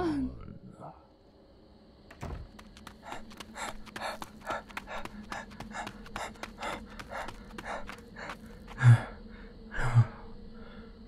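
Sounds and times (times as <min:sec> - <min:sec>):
man panting: 0:02.9 - 0:10.3.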